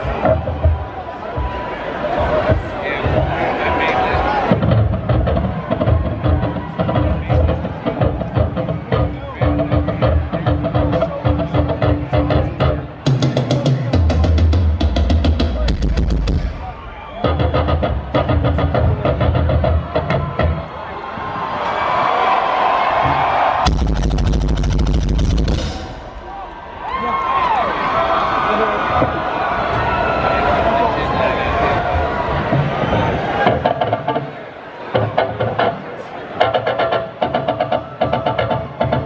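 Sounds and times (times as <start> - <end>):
crowd cheering and shouting: 0.0 - 39.0
rock band drum kit: 4.5 - 20.7, 22.9 - 27.4, 32.5 - 39.0.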